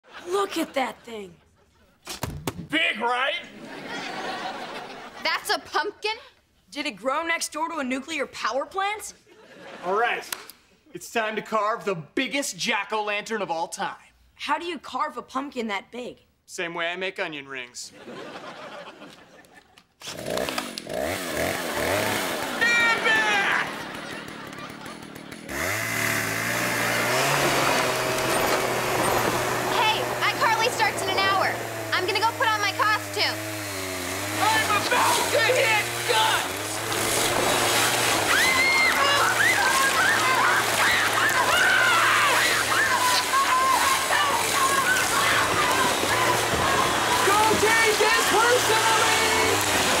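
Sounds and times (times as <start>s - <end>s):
chainsaw running: 20.0s - 50.0s.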